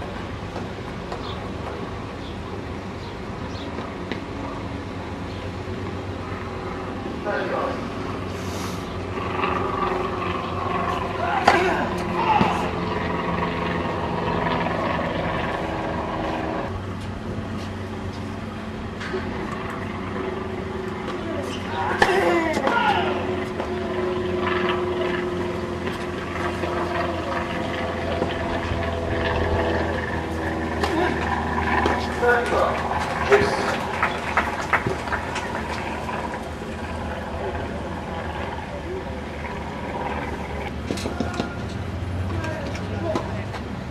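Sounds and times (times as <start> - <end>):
low outdoor rumble: 0.0 - 43.9
mechanical drone with held tones: 4.6 - 42.6.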